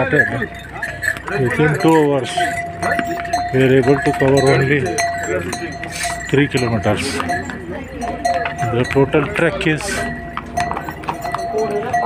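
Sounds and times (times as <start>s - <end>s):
hooves clip-clopping on stone: 0.0s - 12.0s.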